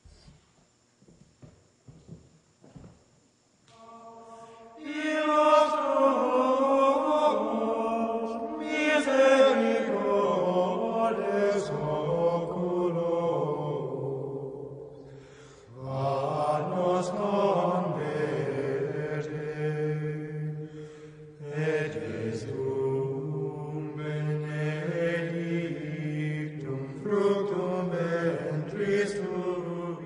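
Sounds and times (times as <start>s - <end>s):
men chanting in low voices: 3.7s - 30.0s.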